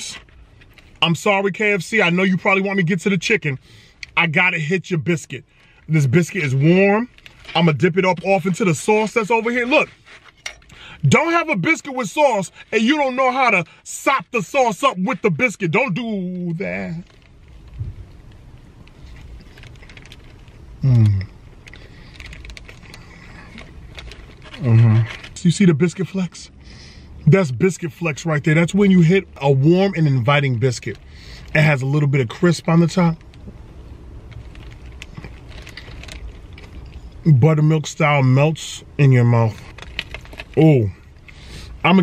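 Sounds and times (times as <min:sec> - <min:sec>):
low rumble: 0:16.7 - 0:25.4
person chewing crunchy biscuit: 0:18.8 - 0:25.4.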